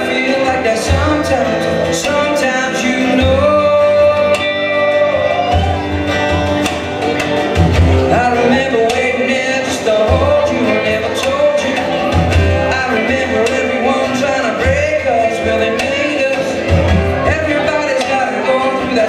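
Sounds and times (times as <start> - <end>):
electric and acoustic guitars: 0.0 - 19.0
person singing: 0.0 - 19.0.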